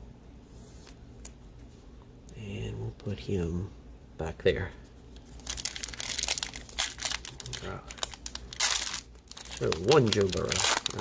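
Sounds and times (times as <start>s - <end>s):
foil wrapper crinkling: 5.2s - 11.0s.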